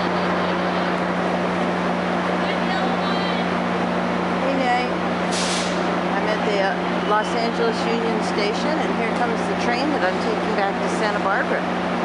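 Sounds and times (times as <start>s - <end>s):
hum of idling train equipment: 0.0s - 12.0s
voices on platform: 2.2s - 5.0s, 6.0s - 11.7s
air brakes hiss: 5.3s - 5.9s.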